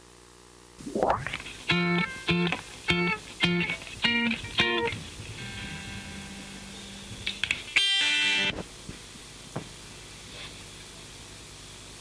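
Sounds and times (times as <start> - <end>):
picked guitar notes: 0.8 - 8.6
guitar chord ringing: 1.2 - 8.6.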